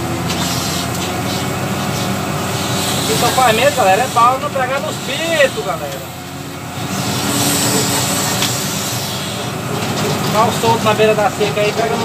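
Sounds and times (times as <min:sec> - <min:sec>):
diesel engine working under load: 0:00.0 - 0:12.0.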